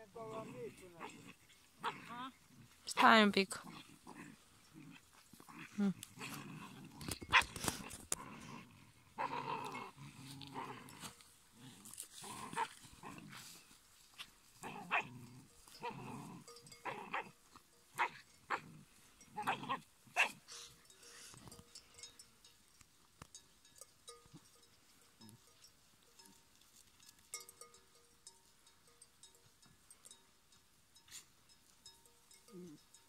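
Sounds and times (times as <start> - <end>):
puppies growling: 0.2 - 2.8, 3.6 - 13.4, 14.6 - 17.3.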